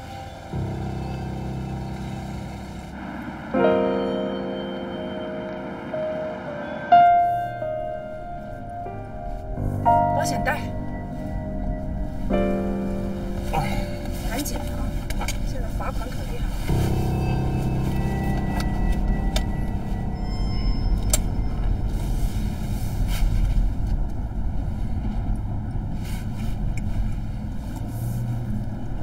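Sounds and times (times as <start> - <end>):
background music: 0.0 - 23.4
car cabin road noise: 0.0 - 29.0.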